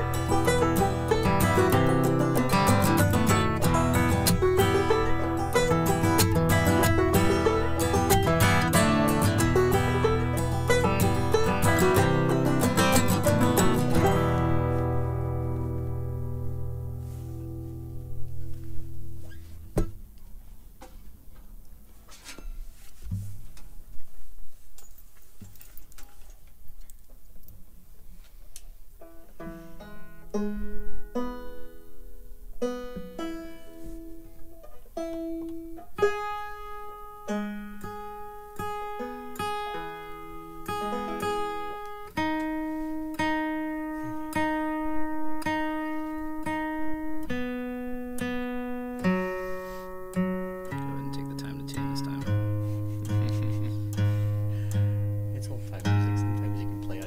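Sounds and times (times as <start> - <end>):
acoustic guitar picking: 0.0 - 23.9, 28.9 - 57.0.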